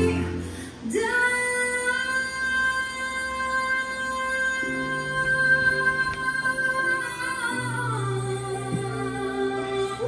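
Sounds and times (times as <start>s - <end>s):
quiet musical accompaniment: 0.0s - 10.0s.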